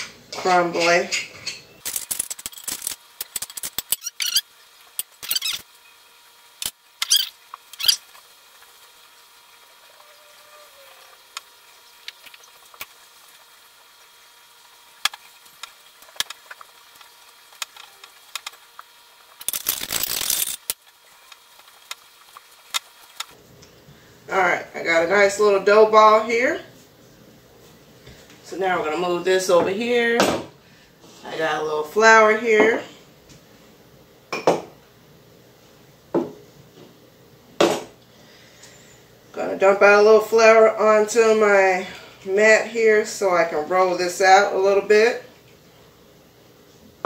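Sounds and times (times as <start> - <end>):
dough clicking and scraping on glass: 1.5 - 4.4.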